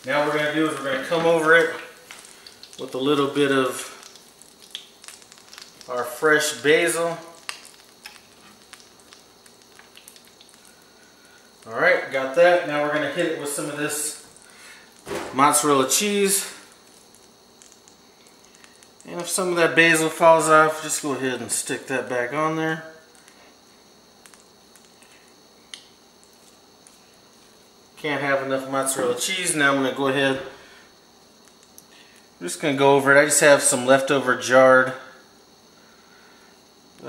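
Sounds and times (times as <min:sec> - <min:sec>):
hot oil sizzling faintly: 0:00.0 - 0:37.0
small pops and crackles of oil: 0:00.3 - 0:11.7, 0:14.1 - 0:19.5, 0:23.1 - 0:23.6, 0:24.2 - 0:27.6, 0:31.2 - 0:32.4.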